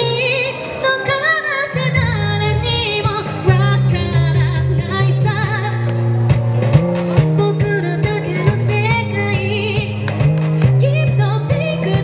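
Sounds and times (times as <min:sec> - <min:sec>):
woman singing into microphone: 0:00.0 - 0:06.0, 0:07.1 - 0:12.0
pop backing music with beat: 0:00.0 - 0:12.0.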